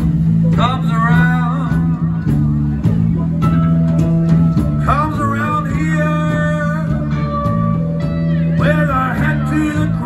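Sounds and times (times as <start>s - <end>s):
live rock band playing: 0.0s - 10.0s
wavering lead guitar line: 0.0s - 10.0s.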